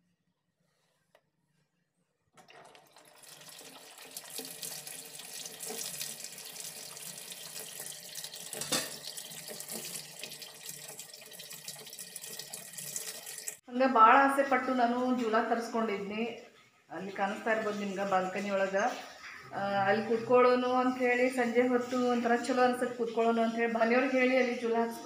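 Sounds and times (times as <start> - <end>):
water pouring into washing machine: 2.4 - 13.6.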